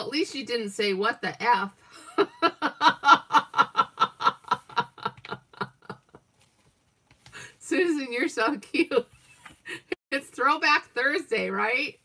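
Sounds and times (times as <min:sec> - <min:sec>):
woman laughing: 0:02.0 - 0:06.2.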